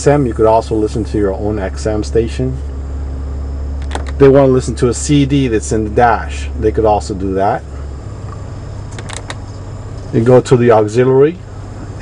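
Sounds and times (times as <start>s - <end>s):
low cabin hum: 0.0s - 12.0s.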